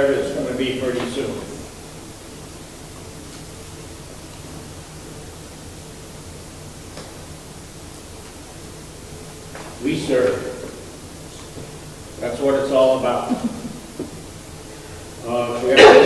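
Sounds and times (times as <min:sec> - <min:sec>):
low steady hum: 0:00.0 - 0:16.0
steady hiss: 0:00.0 - 0:16.0.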